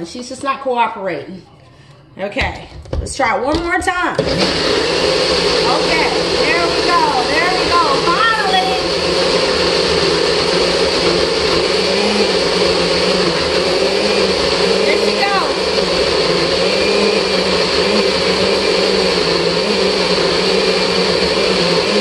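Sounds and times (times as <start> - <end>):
blender motor grinding: 4.2 - 22.0.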